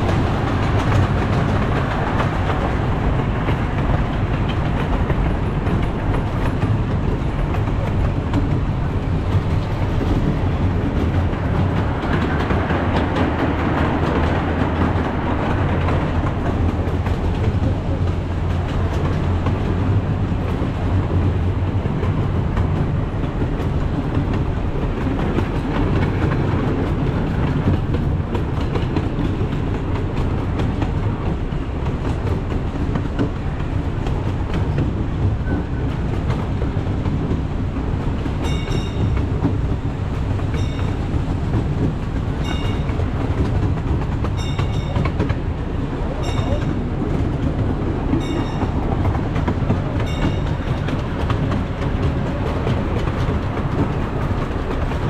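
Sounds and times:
miniature steam train rolling: 0.0s - 55.0s
wheels clacking on rail joints: 0.0s - 55.0s
crossing warning bell: 38.4s - 41.3s, 42.4s - 47.3s, 48.0s - 51.6s.

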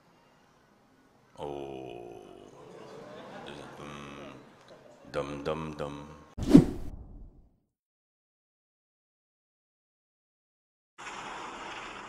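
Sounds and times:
whoosh swish: 6.4s - 7.4s.

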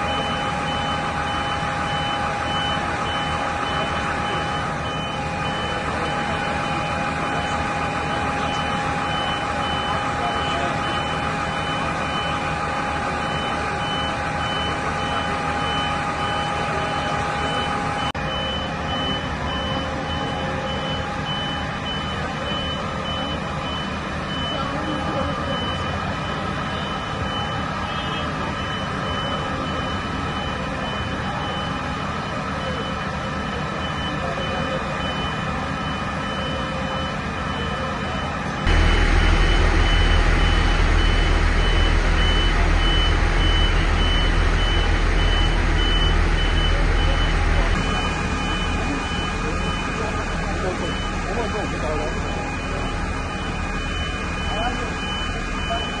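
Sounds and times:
fire engine running: 0.0s - 56.0s
vehicle warning beeper: 0.0s - 56.0s.

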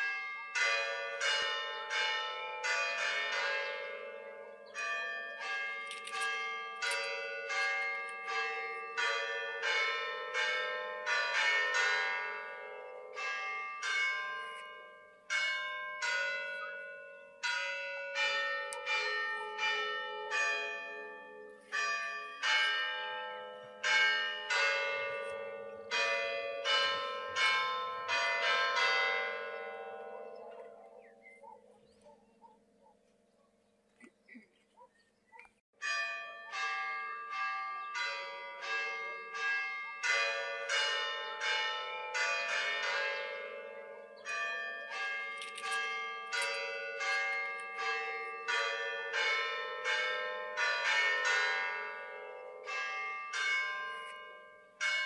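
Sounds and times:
church bells ringing a peal: 0.0s - 34.9s, 35.8s - 55.0s.

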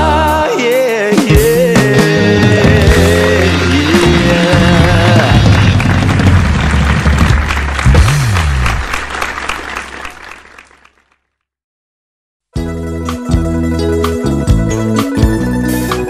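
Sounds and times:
live stage music: 0.0s - 10.8s, 12.6s - 16.0s
audience applause: 2.8s - 11.2s.

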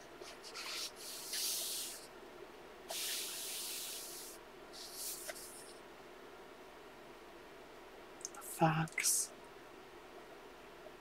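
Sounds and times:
hand swishing over paper: 0.2s - 2.1s, 2.9s - 5.8s
page turning rustle: 4.8s - 5.8s.

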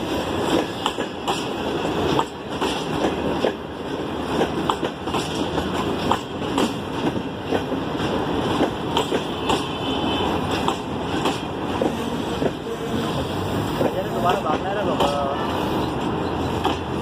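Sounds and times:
train wheels rumbling: 0.0s - 17.0s
wheels clacking on rail joints: 0.0s - 17.0s.

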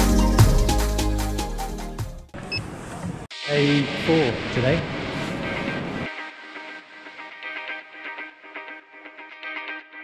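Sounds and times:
background music: 0.0s - 2.3s, 3.3s - 10.0s.

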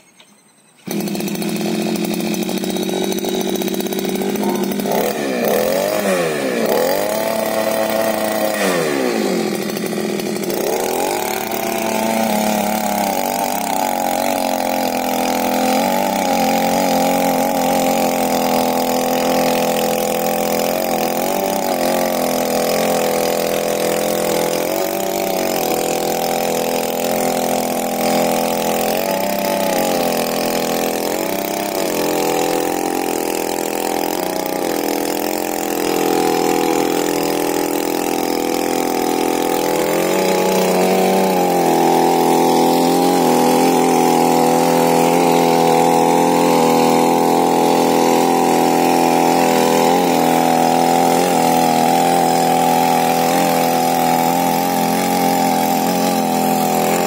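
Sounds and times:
starter cord pulled: 0.0s - 18.8s
tiller tines churning soil: 0.0s - 57.0s
small petrol engine running: 0.8s - 57.0s.

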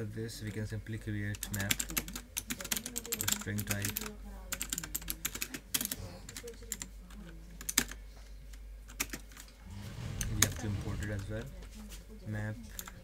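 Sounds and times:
keyboard typing: 1.4s - 6.9s.

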